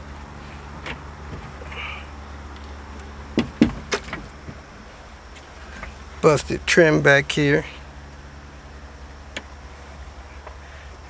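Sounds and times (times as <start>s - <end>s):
low steady hum: 0.0s - 11.0s
handling clicks and knocks: 3.0s - 4.6s.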